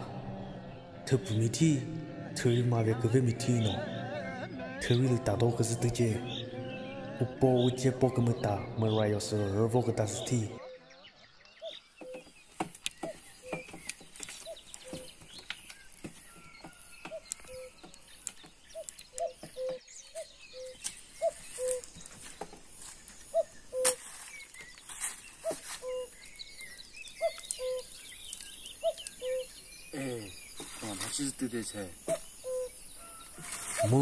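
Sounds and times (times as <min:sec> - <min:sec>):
cuckoo calling: 0:00.0 - 0:34.0.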